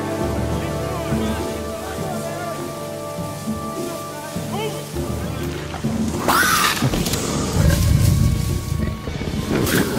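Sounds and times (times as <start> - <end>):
music: 0.0 - 9.9.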